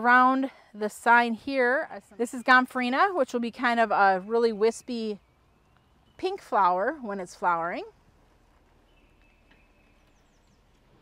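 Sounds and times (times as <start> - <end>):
distant bird whistling and chirping: 1.9 - 7.0, 8.8 - 11.0.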